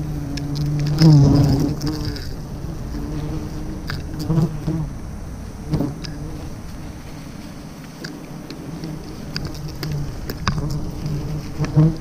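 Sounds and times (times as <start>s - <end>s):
honeybees buzzing: 0.0s - 12.0s
rustling leaves and twigs: 0.0s - 12.0s.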